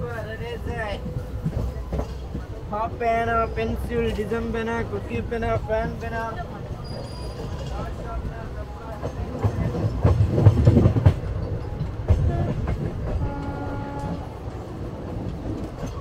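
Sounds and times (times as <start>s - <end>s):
train rumble: 0.0s - 16.0s
wheel clatter over rail joints: 0.0s - 16.0s.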